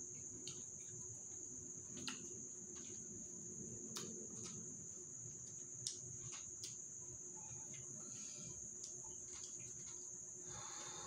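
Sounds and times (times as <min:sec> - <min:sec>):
night insects trilling: 0:00.0 - 0:11.0.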